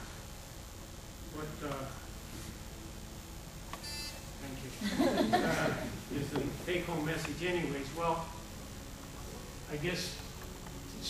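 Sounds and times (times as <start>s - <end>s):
short high beep: 3.8s - 4.3s.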